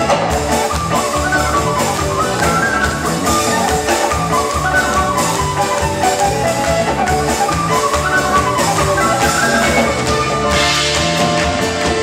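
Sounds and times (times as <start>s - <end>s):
accordion: 0.0s - 12.0s
folk band playing instrumental: 0.0s - 12.0s.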